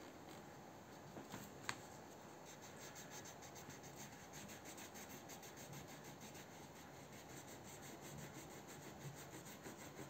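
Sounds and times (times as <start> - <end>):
crayon rubbing on paper: 2.4 - 10.0.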